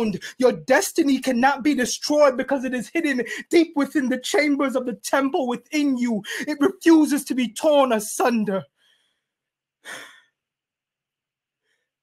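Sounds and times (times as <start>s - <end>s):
man breathing out: 9.9s - 10.3s.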